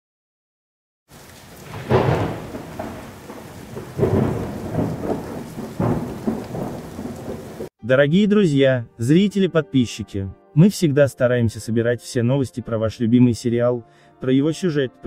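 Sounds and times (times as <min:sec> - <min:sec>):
steady rain: 0:01.1 - 0:07.7
thunder rolling: 0:01.2 - 0:07.7.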